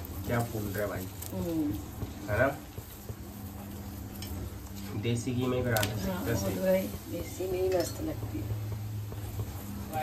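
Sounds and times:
flatbread sizzling in ghee: 0.0s - 10.0s.

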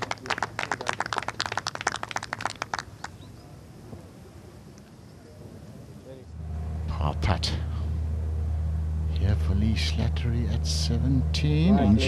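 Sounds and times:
spectators clapping: 0.0s - 3.2s
quiet outdoor ambience: 0.0s - 12.0s
steady low rumble: 3.6s - 12.0s.

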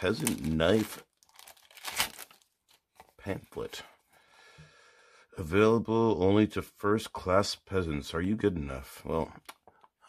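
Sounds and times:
plastic bag crinkling: 0.0s - 3.2s.

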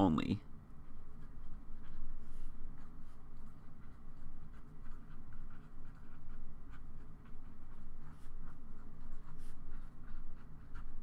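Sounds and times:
marker scratching on paper: 1.1s - 11.0s.

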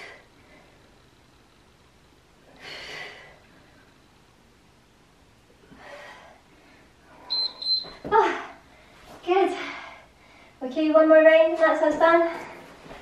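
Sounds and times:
woman breathing heavily: 0.0s - 1.2s, 2.4s - 4.2s, 5.5s - 10.6s, 12.0s - 13.0s.

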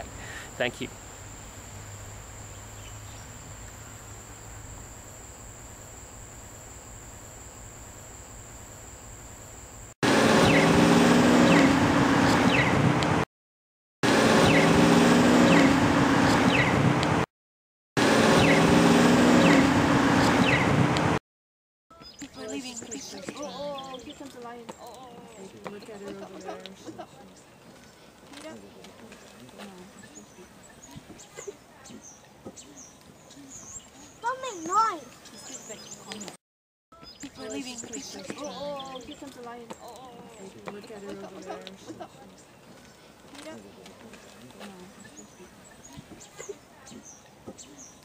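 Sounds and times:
city traffic: 0.0s - 5.8s, 10.0s - 13.2s, 14.0s - 17.2s, 18.0s - 21.2s
steady background hiss: 0.0s - 10.0s
high-pitched insect buzz: 0.0s - 10.6s
vehicle engine running: 0.0s - 13.2s
faint indistinct voices: 22.0s - 36.4s, 37.0s - 48.0s.

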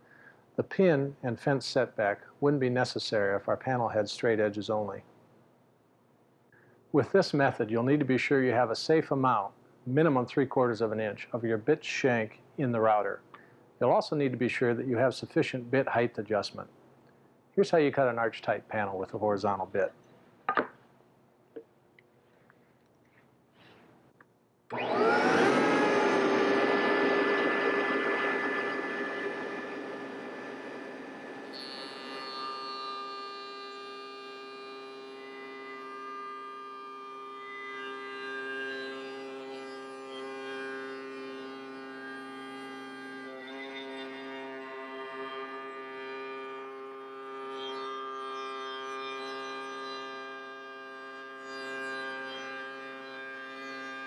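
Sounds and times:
router bit cutting wood: 24.7s - 54.0s
router whining: 24.7s - 54.0s.

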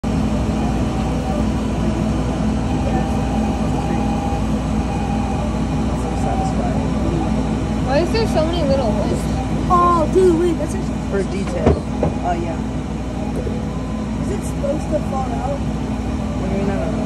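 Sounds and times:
fans rushing air: 0.0s - 17.0s
laser cutter humming: 0.0s - 17.0s.

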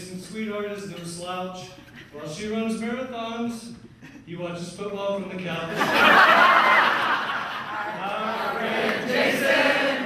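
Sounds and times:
roomful of people laughing: 5.6s - 8.8s.

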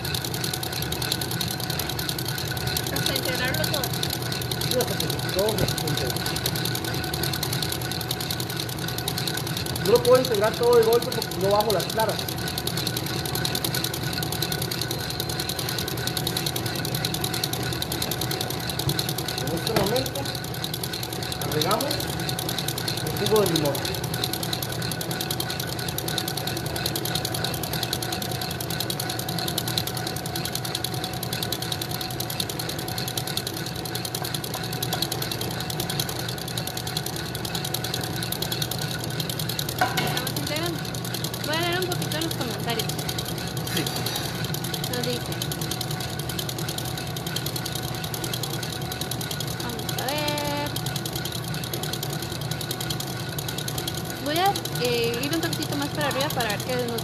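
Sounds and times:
electric mixer motor humming: 0.0s - 57.0s.

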